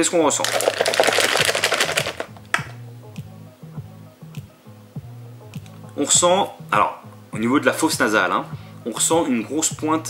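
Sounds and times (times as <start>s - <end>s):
foil pouch crinkling: 0.3s - 2.4s.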